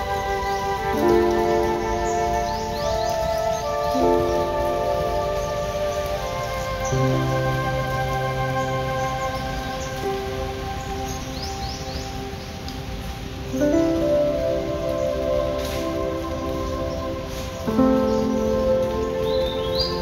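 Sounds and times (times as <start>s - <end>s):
calm music of held chords: 0.0s - 20.0s
steady hiss: 0.0s - 20.0s.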